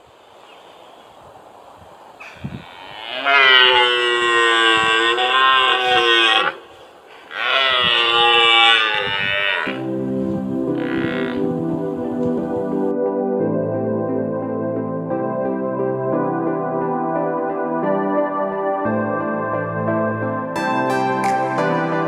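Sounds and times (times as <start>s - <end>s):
deer stag roaring: 2.3s - 9.9s, 10.7s - 11.5s
soft ambient music: 7.8s - 22.0s.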